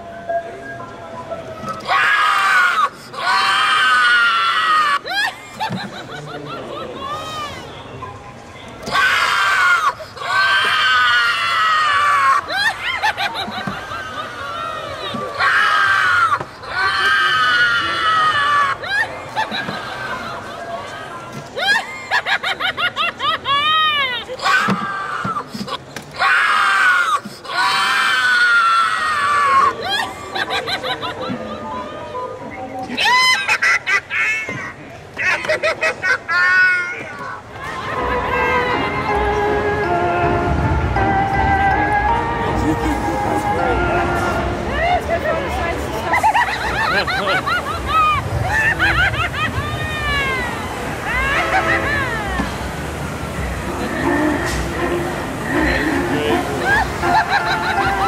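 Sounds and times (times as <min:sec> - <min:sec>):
high-pitched screams: 0:08.8 - 0:13.0.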